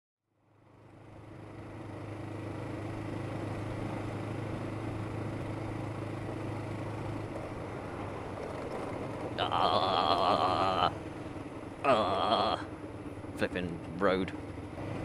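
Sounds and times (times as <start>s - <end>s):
wind and road noise: 0.3s - 15.0s
motorcycle engine cruising: 0.5s - 15.0s.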